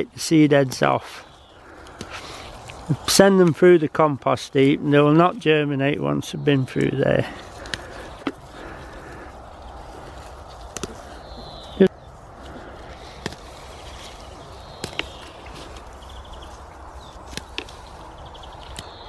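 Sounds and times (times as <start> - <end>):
outdoor background: 0.0 - 19.0
leaves and stems snapping: 0.6 - 3.6, 6.7 - 19.0.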